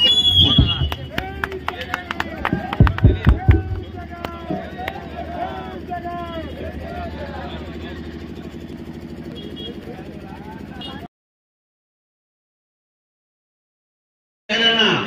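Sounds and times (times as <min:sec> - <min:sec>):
crowd talking and calling out: 0:00.0 - 0:11.1
steady low hum: 0:00.0 - 0:11.1
loud thumps: 0:00.2 - 0:01.7, 0:02.3 - 0:04.8.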